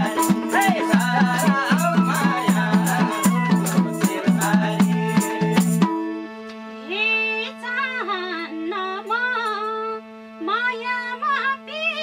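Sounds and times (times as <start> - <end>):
woman singing folk verse: 0.0 - 5.6, 6.8 - 12.0
harmonium drone: 0.0 - 12.0.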